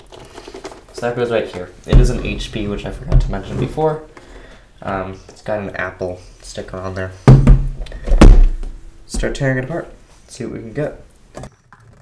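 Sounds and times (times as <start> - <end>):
metal case thudding on wooden table: 7.3 - 8.8.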